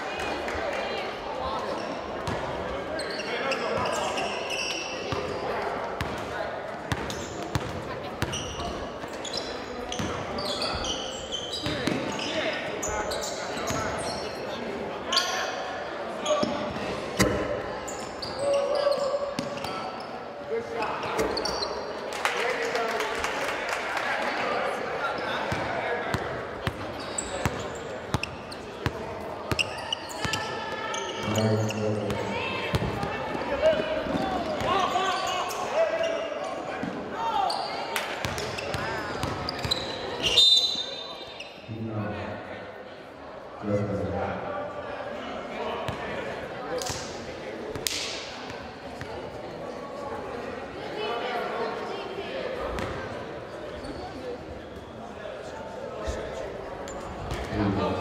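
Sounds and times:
voices calling out in echoing hall: 0:00.0 - 0:58.0.

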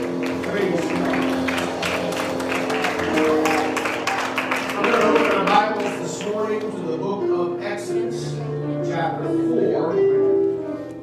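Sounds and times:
hand clapping: 0:00.0 - 0:06.7
church keyboard chords: 0:00.0 - 0:11.0.

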